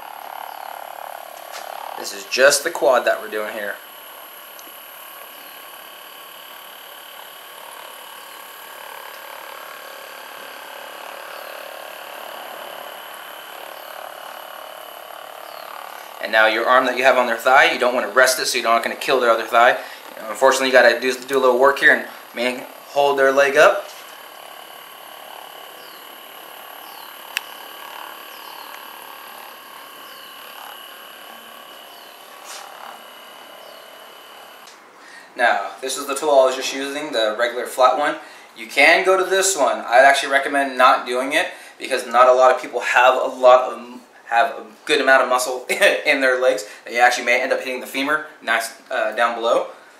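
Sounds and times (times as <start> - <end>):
massage gun buzzing: 0.0 - 49.9
sharp click: 27.3 - 27.6.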